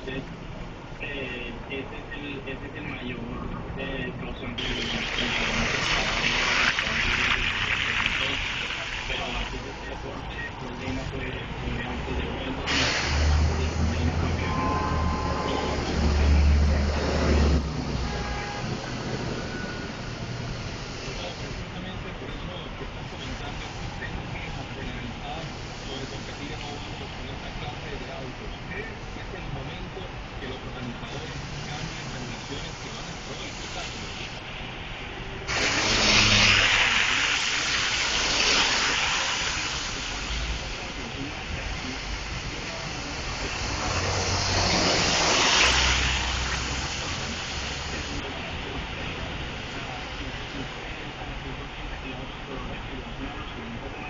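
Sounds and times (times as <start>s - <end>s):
steady hiss: 3.8s - 54.0s
loud rushing noise: 10.8s - 22.0s, 30.4s - 50.6s.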